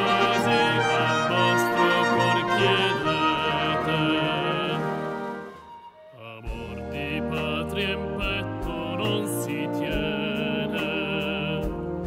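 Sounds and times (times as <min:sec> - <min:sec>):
tenor singing vibrato notes: 0:00.0 - 0:06.3
military wind band playing: 0:00.0 - 0:10.5.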